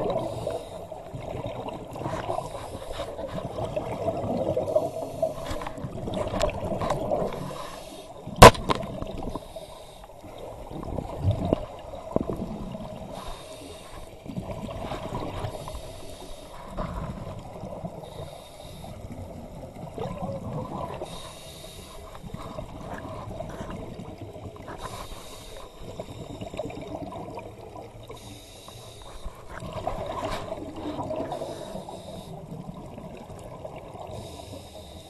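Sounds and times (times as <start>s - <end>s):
exhaled bubbles gurgling: 0.0s - 35.0s
regulator hiss on inhalation: 7.4s - 8.2s, 9.3s - 10.1s, 13.1s - 14.1s, 18.1s - 19.0s, 21.0s - 22.2s, 24.8s - 26.3s, 28.2s - 29.5s, 31.3s - 32.4s, 34.2s - 35.0s.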